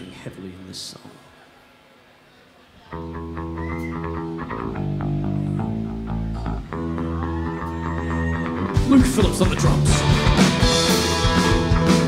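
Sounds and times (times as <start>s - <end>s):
electric bass guitar riff: 2.9s - 12.0s.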